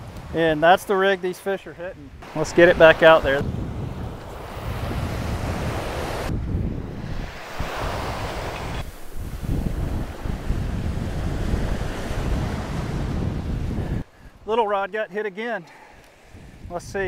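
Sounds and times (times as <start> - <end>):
wind buffeting microphone: 0.0 - 0.6, 1.9 - 14.5, 16.1 - 17.0
small surf breaking on beach: 2.2 - 14.0.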